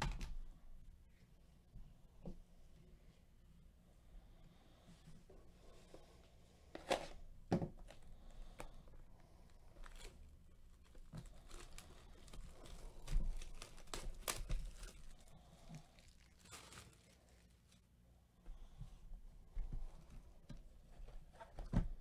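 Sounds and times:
plastic wrap tearing and crinkling: 9.8s - 17.8s.

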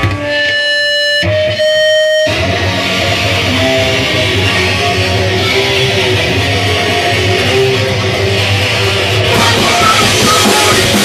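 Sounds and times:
electric guitar sustained notes: 0.0s - 11.0s
punk band playing: 0.0s - 11.0s.

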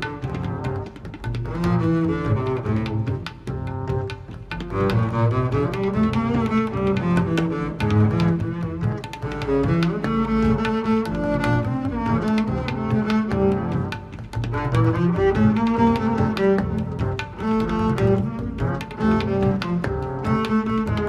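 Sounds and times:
double bass playing: 0.0s - 4.1s, 4.7s - 13.9s, 14.5s - 21.0s.

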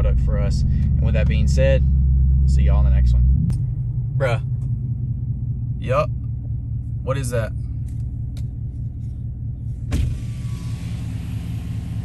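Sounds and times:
engine rumbling from inside cab: 0.0s - 12.0s.

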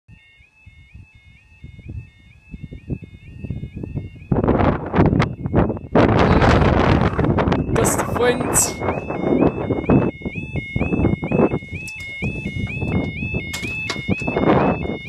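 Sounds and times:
level crossing alarm warbling: 0.1s - 15.0s.

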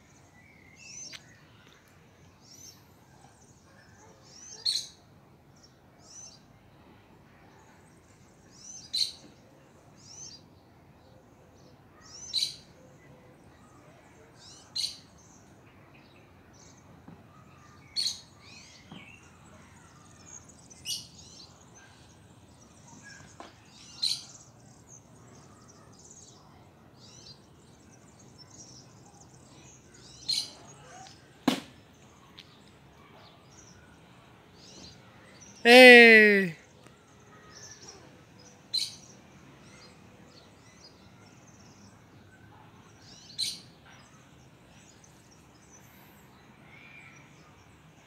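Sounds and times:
songbirds chirping: 0.0s - 48.0s.

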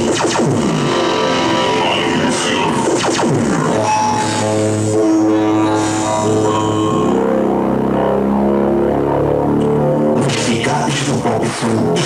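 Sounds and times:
low bass tone: 0.0s - 12.0s
synthesizer chords: 0.0s - 12.0s.

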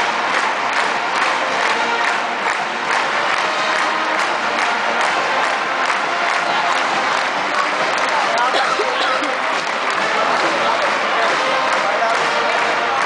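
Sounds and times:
stadium crowd cheering and shouting: 0.0s - 13.0s.

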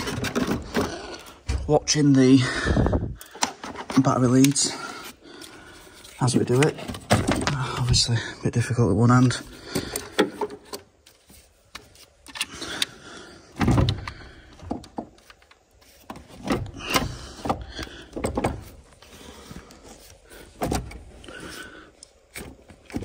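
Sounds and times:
plastic battery case knocking and scraping: 0.0s - 1.1s, 6.5s - 8.0s.

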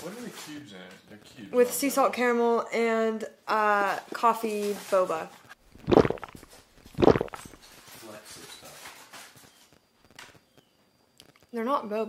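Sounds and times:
slurping through a straw: 5.7s - 7.7s
mouth sounds: 5.8s - 7.6s.

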